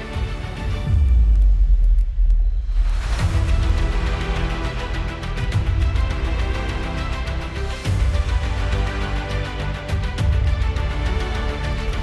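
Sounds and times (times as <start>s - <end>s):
deep rumble sound effect: 0.7s - 6.4s.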